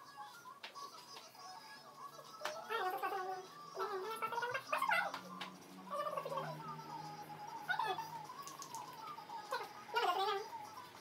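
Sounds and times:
person making warbling vocal sounds: 2.7s - 5.2s, 5.9s - 6.9s, 9.5s - 10.5s.

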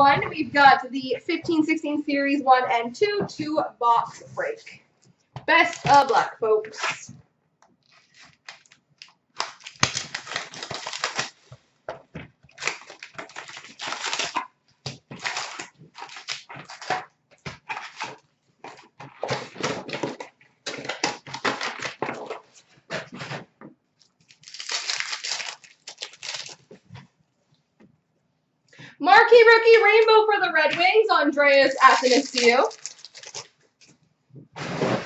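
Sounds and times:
wrapper and cardboard rustling: 5.5s - 7.1s, 7.8s - 27.0s, 30.1s - 34.0s, 34.6s - 35.0s
card packs being torn open: 7.9s - 11.5s, 12.5s - 23.1s, 24.0s - 26.8s, 31.6s - 33.9s.

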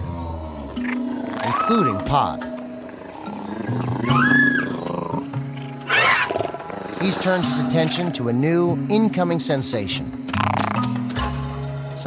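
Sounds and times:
raptor dinosaur cry: 0.0s - 8.1s
background music with low notes: 0.0s - 12.0s.

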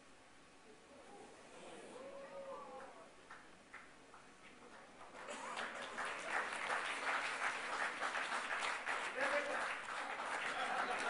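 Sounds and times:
audience applauding: 3.3s - 11.0s.

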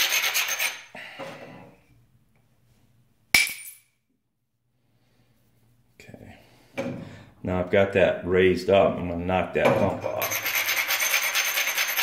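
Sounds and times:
stone scraping: 0.0s - 0.9s, 9.8s - 12.0s.

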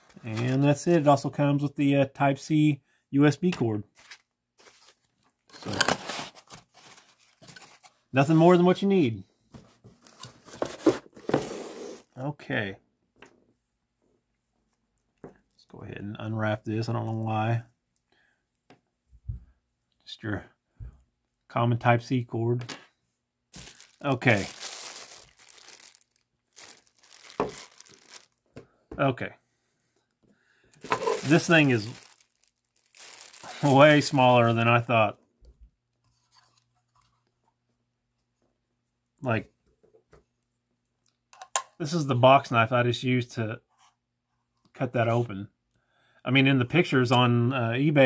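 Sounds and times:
packaging crinkling and rustling: 4.0s - 8.0s, 23.6s - 28.4s, 30.8s - 34.5s.

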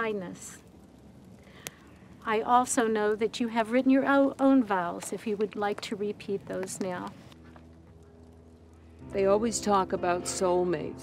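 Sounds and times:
soft sustained music chord: 7.4s - 11.0s.

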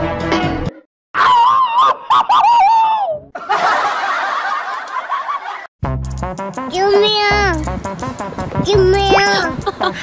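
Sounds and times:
people laughing: 3.4s - 5.7s, 9.3s - 10.0s.

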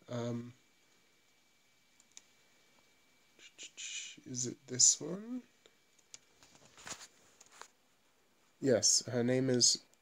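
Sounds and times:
man whispering: 0.0s - 0.6s, 3.4s - 5.5s.

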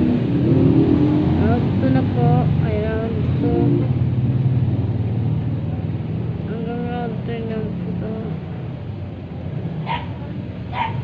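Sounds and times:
dog barking: 9.8s - 11.0s.

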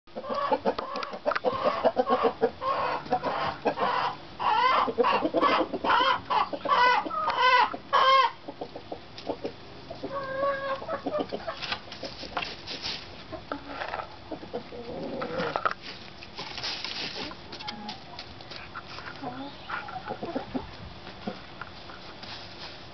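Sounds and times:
hens clucking and calling: 0.1s - 15.9s, 17.0s - 22.2s.

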